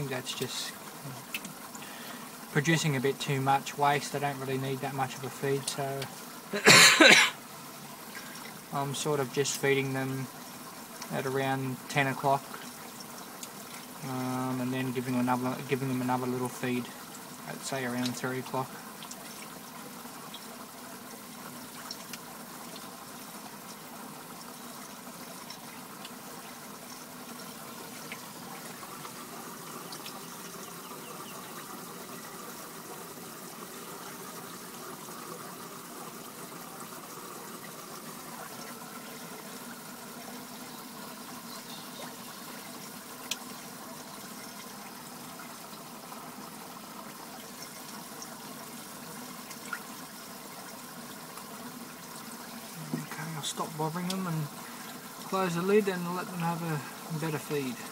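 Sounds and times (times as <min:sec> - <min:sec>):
water trickling into fish tank: 0:00.0 - 0:57.9.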